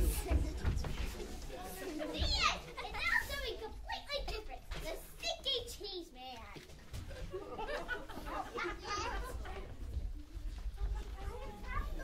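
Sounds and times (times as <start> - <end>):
children's voices chattering: 0.0 - 12.0.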